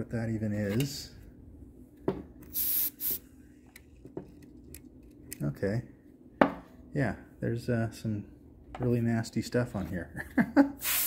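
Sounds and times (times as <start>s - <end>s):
compressed air duster hissing: 2.5s - 3.2s, 10.8s - 11.0s.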